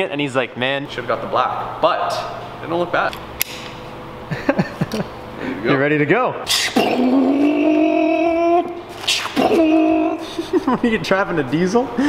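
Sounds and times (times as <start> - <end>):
sharp click: 3.1 - 3.8.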